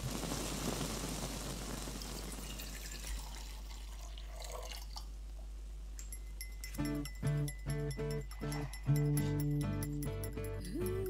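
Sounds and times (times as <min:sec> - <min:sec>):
liquid pouring and splashing: 0:00.0 - 0:05.2
small drip-like clicks: 0:04.6 - 0:06.8.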